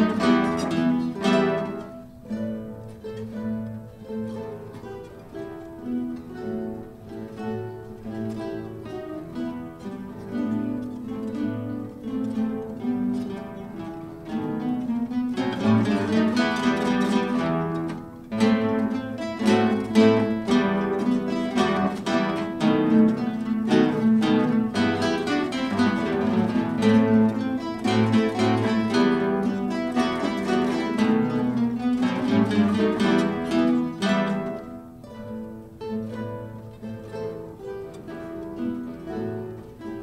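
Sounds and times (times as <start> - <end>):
classical guitar ensemble playing: 0.0 - 40.0.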